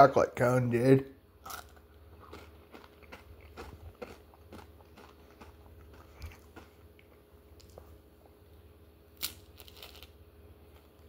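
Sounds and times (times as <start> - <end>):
crunching ice cream cone: 1.4 - 7.8, 9.1 - 10.2.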